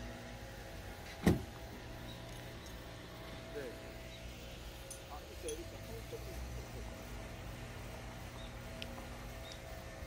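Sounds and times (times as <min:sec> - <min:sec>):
steady low hum: 0:00.0 - 0:10.0
short thump: 0:01.1 - 0:01.5.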